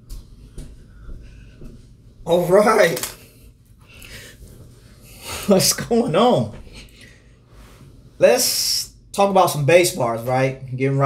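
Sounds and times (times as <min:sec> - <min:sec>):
rustling and shuffling: 0:00.0 - 0:05.2.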